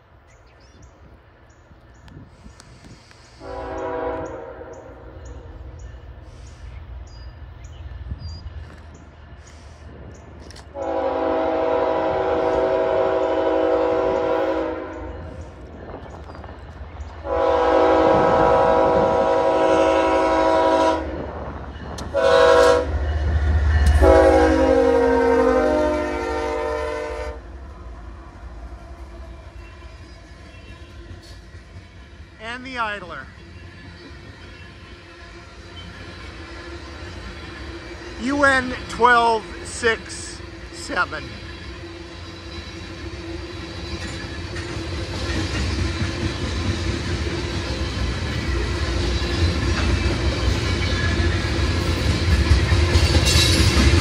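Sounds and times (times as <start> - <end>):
diesel locomotive horn blasts: 3.4 - 5.4, 10.7 - 15.3, 17.2 - 21.4, 22.0 - 27.5.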